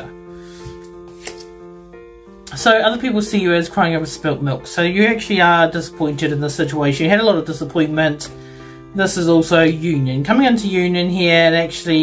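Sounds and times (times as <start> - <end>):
soft piano music: 0.0 - 12.0
tarot cards clicking: 0.6 - 1.6.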